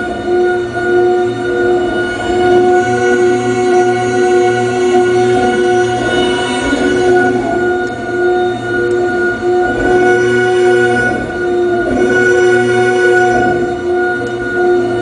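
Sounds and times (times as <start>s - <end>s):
electrical interference drone: 0.0s - 15.0s.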